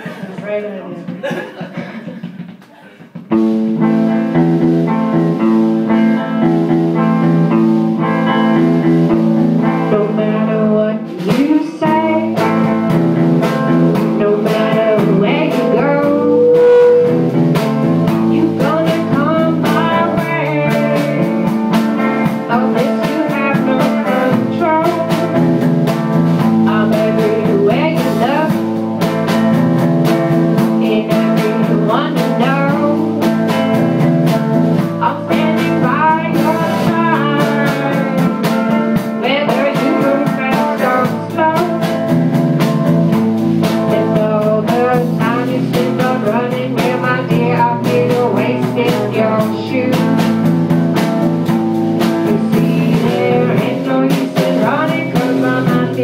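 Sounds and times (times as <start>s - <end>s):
sharp drum beats: 0.0s - 56.0s
guitar chords: 3.3s - 56.0s
woman singing: 9.6s - 17.4s, 18.0s - 25.7s, 26.3s - 28.8s, 30.6s - 34.0s, 34.8s - 42.2s, 43.6s - 50.5s, 52.0s - 56.0s.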